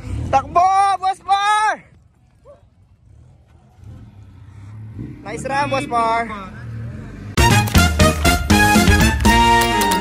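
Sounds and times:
engine running at low revs: 2.0 - 9.5.

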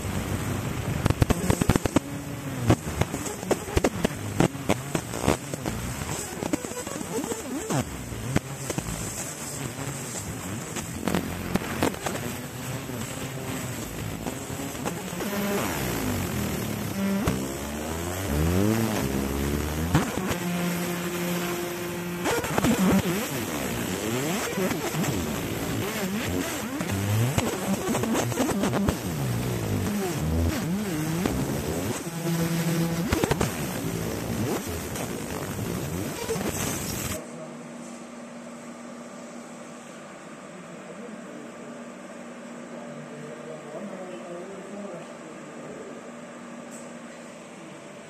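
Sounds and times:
laser crackling and popping: 0.0 - 37.2.

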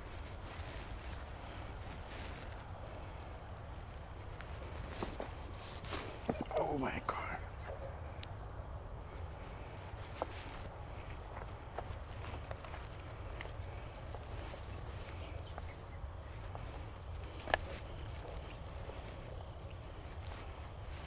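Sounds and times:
footsteps on loose stones: 0.0 - 7.8, 9.1 - 21.0.

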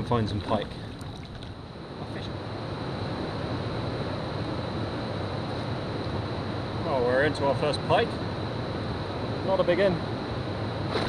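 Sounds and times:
water around a kayak: 0.0 - 1.7
faint high whine: 0.0 - 11.0.

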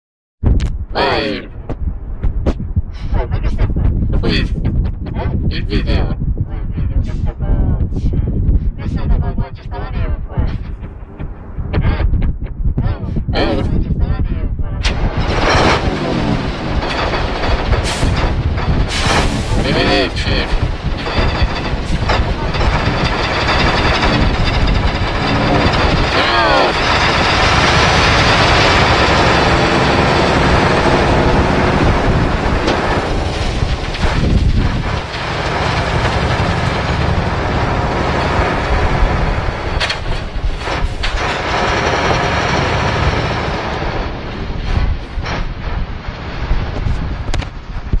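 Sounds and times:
truck engine revving: 14.8 - 47.4.

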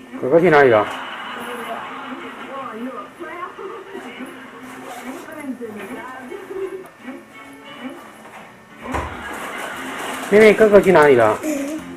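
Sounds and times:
music: 2.4 - 11.9.

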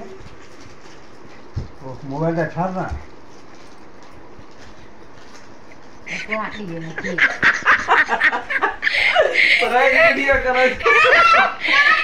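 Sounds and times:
steady room noise: 0.0 - 12.0.

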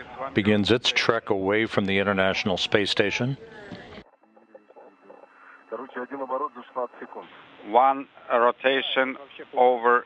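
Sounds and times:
radio voice chatter: 0.0 - 9.9.

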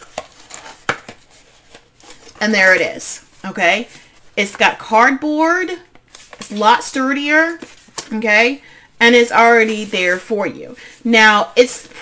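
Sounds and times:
cardboard rustling: 0.0 - 4.1.

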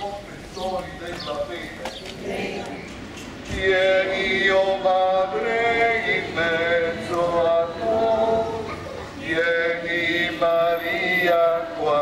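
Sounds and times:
man's voice leading singing: 0.0 - 2.2, 3.5 - 12.0
slow hymn singing: 0.0 - 12.0.

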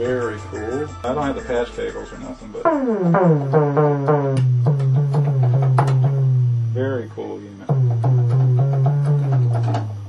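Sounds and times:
buzzy synthesizer note sweeping down: 1.1 - 10.0.

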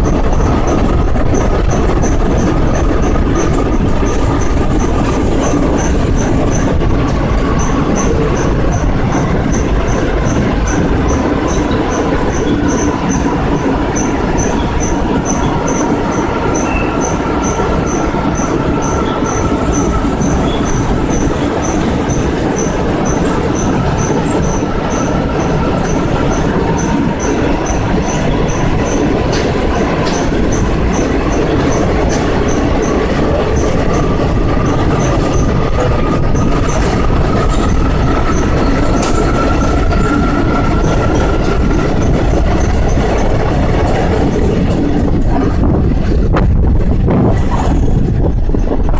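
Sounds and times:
rail clicks: 0.0 - 48.9
train wheels rumbling in tunnel: 0.0 - 48.9
wheel squeal: 7.4 - 44.5.

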